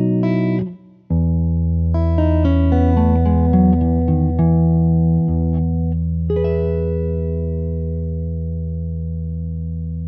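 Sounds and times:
clean electric guitar fingerstyle: 0:00.0 - 0:10.0.

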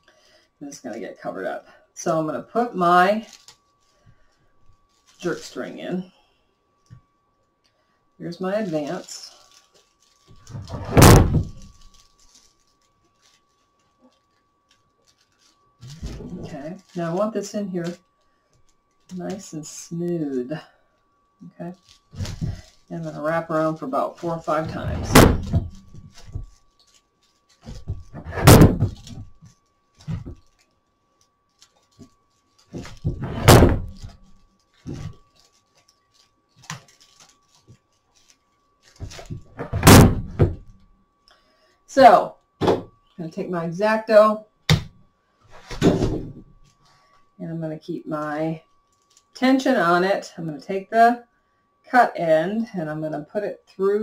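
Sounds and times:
cord wrapping handling noise: 0:03.2 - 0:05.3, 0:08.5 - 0:20.3, 0:21.0 - 0:40.9, 0:48.8 - 0:49.4
faint steady tone: 0:46.4 - 0:54.0.

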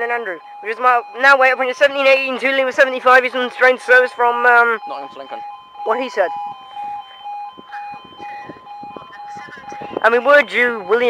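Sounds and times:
level crossing alarm beeping: 0:00.0 - 0:11.0.

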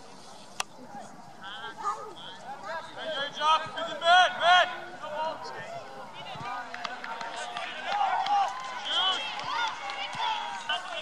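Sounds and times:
players and spectators shouting: 0:01.4 - 0:11.0.

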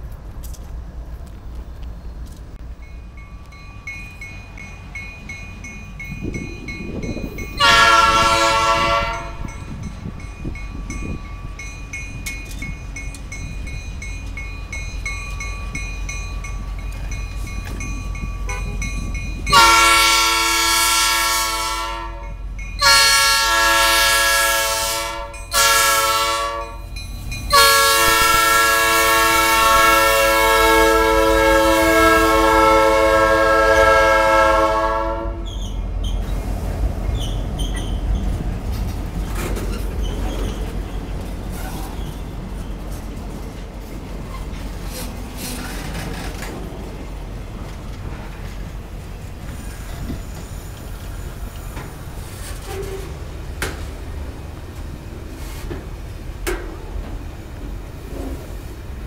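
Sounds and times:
engine and rail rumble: 0:00.0 - 0:59.0
locomotive air horn blasts: 0:07.6 - 0:09.5, 0:19.5 - 0:26.8, 0:27.5 - 0:35.5.

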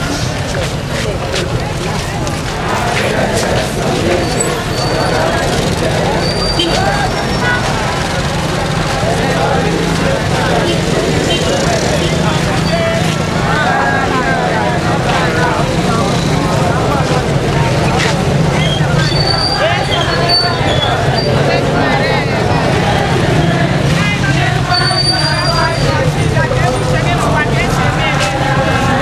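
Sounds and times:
crowd talking and calling out: 0:00.0 - 0:29.0.

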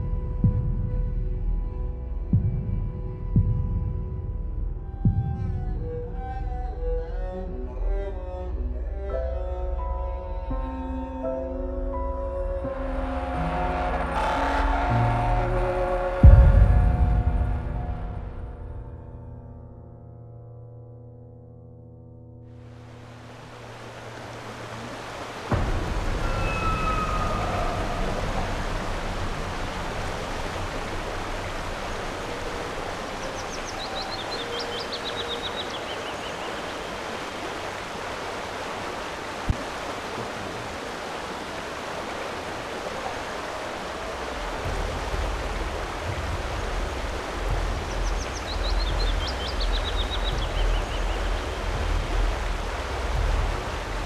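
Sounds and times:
river water flowing: 0:07.2 - 0:18.7, 0:22.5 - 0:54.0
low rumble: 0:11.9 - 0:19.6, 0:25.5 - 0:32.2
bird descending trill: 0:26.2 - 0:28.8.

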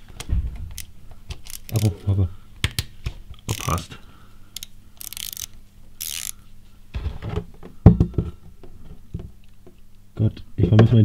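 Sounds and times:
socket ratchet clicking: 0:00.7 - 0:01.9, 0:03.5 - 0:03.8, 0:04.6 - 0:06.4.

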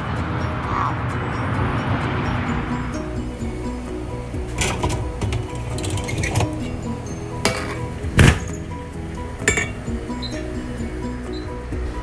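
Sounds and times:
background music: 0:00.0 - 0:12.0
metal scraper clinks: 0:09.4 - 0:09.9.

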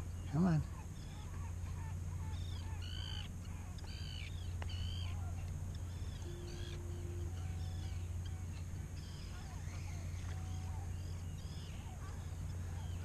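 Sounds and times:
birds calling: 0:00.0 - 0:13.0
low rumble: 0:01.5 - 0:13.0.

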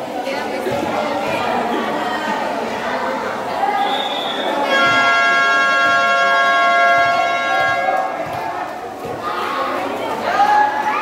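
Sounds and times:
crowd noise: 0:00.0 - 0:11.0
basketball buzzer long blast: 0:04.7 - 0:08.0.

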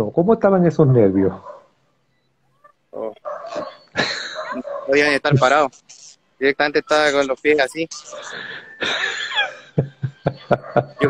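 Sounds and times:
dog barking: 0:01.4 - 0:01.7, 0:03.2 - 0:05.2, 0:10.5 - 0:11.0
person speaking: 0:02.9 - 0:08.6.

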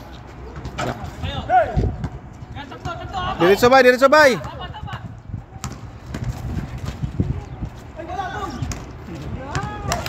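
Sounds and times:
running footsteps on concrete: 0:04.3 - 0:10.0
basketball bouncing: 0:04.4 - 0:07.1.

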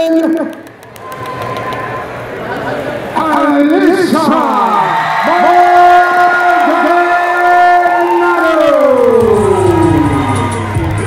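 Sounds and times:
crowd cheering: 0:00.8 - 0:11.0
hip hop music beat: 0:09.2 - 0:11.0.

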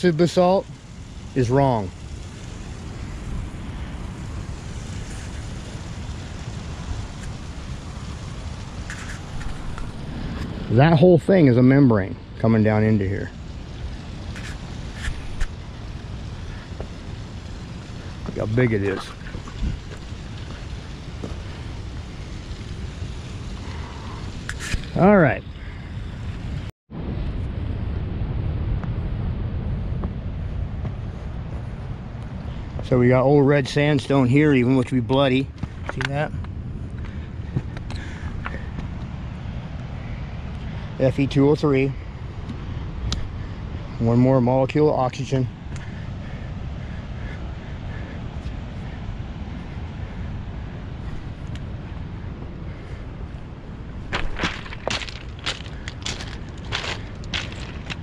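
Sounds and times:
steady outdoor noise: 0:00.0 - 0:58.0
surf rushing: 0:00.0 - 0:58.0
wind rumbling on microphone: 0:00.0 - 0:58.0.

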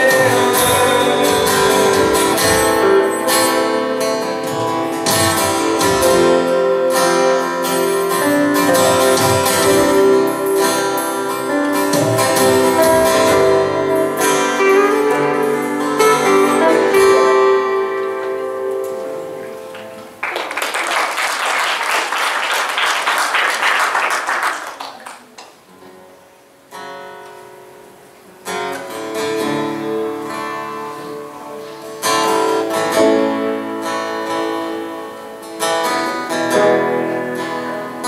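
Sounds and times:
guitars playing chords: 0:00.0 - 0:20.2, 0:25.6 - 0:38.0.

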